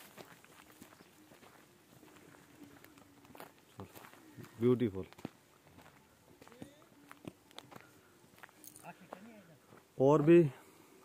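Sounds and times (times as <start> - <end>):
footsteps on dirt track: 0.0 - 10.9.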